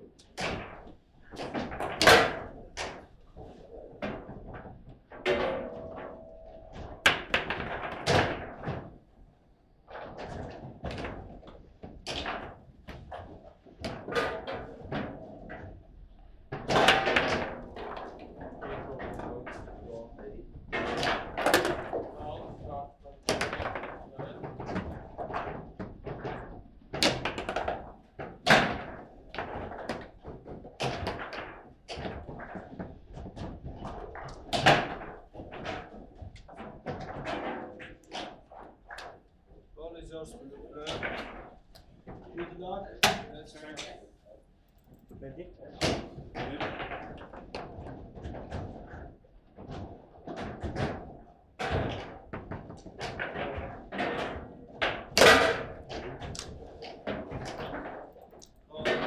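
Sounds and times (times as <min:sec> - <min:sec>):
foosball ball clacks: 0:00.1 - 0:09.0, 0:09.9 - 0:19.9, 0:20.6 - 0:22.2, 0:23.2 - 0:39.3, 0:45.8 - 0:59.0.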